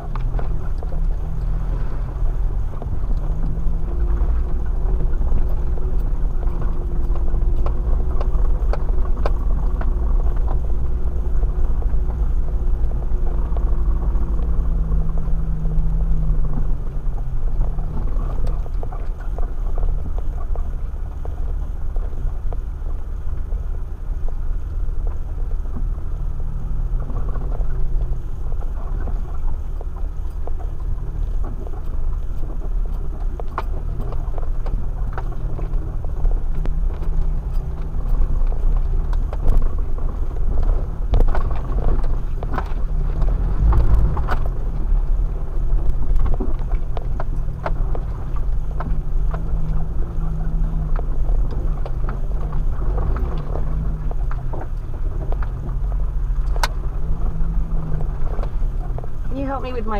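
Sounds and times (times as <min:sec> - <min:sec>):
engine and drivetrain rumble: 0:00.0 - 0:59.9
knocks and rattles over ruts: 0:00.0 - 0:59.9.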